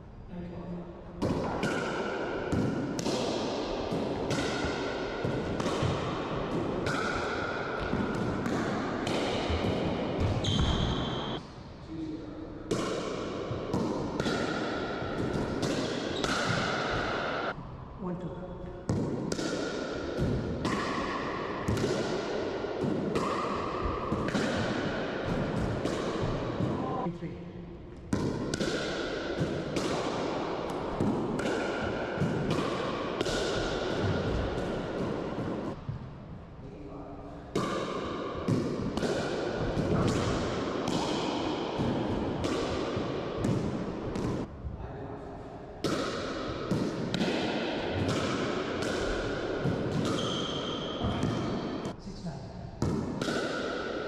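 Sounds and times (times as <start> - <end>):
ball bouncing off floor and walls: 1.2 - 11.4, 28.1 - 36.1, 37.6 - 44.5, 45.8 - 51.9
sneakers squeaking on court floor: 7.8 - 11.4, 49.9 - 51.7.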